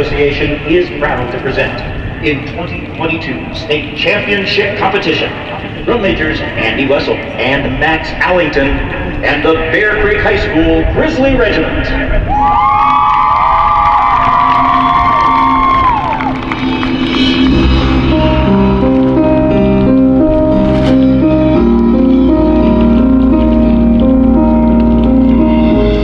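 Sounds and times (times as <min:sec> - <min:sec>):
crowd cheering and whooping: 0:12.2 - 0:18.4
marching band music: 0:14.3 - 0:26.0.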